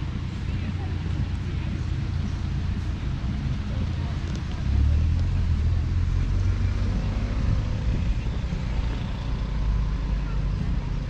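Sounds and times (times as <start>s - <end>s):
low rumble of passing vehicles: 0.0s - 11.0s.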